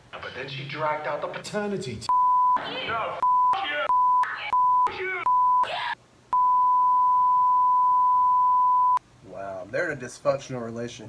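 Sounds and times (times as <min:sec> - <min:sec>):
censor bleep tone: 0:02.1 - 0:02.6, 0:03.2 - 0:05.6, 0:06.3 - 0:09.0.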